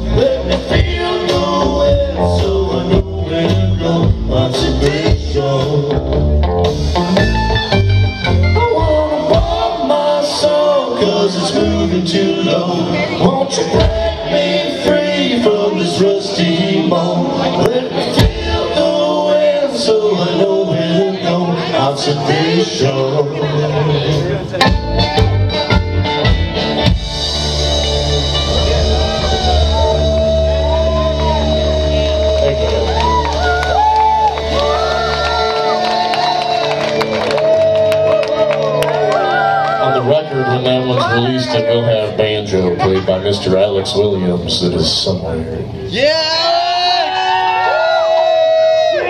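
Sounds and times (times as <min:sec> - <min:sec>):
person singing: 0:00.0 - 0:06.2, 0:08.6 - 0:24.5
electric guitar: 0:00.0 - 0:15.8, 0:20.5 - 0:39.9
drums: 0:00.0 - 0:39.3
bass guitar: 0:00.0 - 0:46.2
audience whooping: 0:28.2 - 0:41.9, 0:46.0 - 0:49.0.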